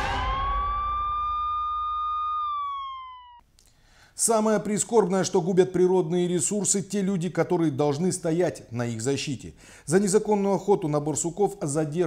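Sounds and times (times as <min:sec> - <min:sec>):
loud hit: 0:00.0 - 0:02.6
police siren wail: 0:00.0 - 0:03.4.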